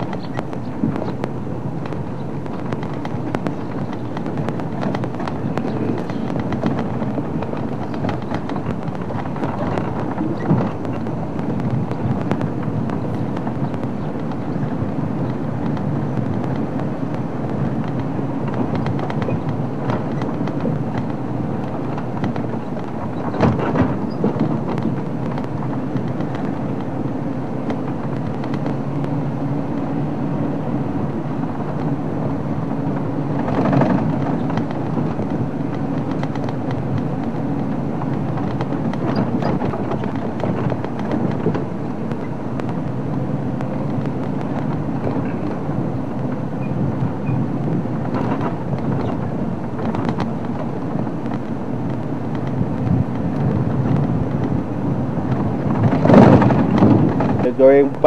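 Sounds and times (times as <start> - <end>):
tyre and body rattle: 0.0 - 16.7, 55.3 - 57.9
vehicle jolts: 0.0 - 29.7, 31.6 - 58.0
vehicle engine hum: 0.0 - 58.0.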